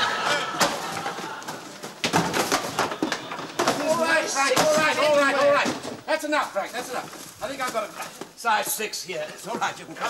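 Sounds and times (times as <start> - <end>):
cardboard boxes thumping down: 0.6 - 6.1.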